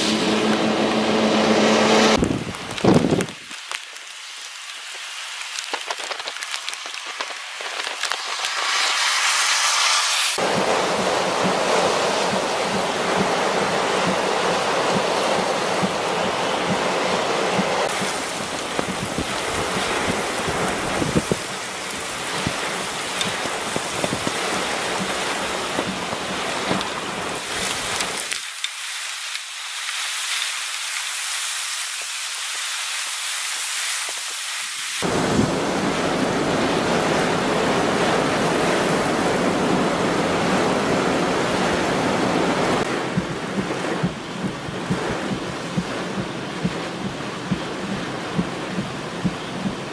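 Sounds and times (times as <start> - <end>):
hurricane wind: 0.0 - 4.0, 4.9 - 49.9
heavy rain: 0.0 - 49.9
wind buffeting microphone: 2.2 - 3.6, 10.4 - 28.2, 35.0 - 49.9.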